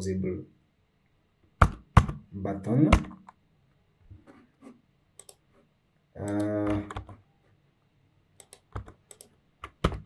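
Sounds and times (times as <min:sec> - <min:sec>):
computer keyboard typing: 0:05.2 - 0:05.4, 0:06.2 - 0:07.2, 0:08.4 - 0:10.0.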